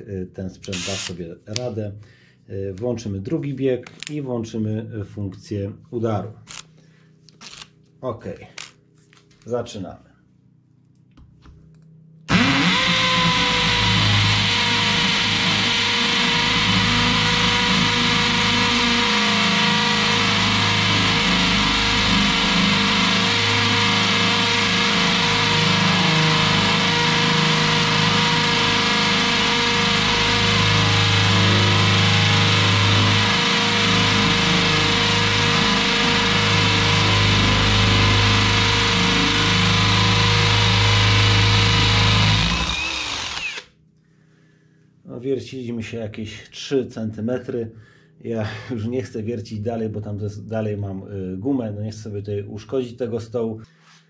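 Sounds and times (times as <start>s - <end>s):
hammer drill boring into concrete: 0.6s - 1.2s, 7.4s - 7.7s, 12.3s - 43.7s.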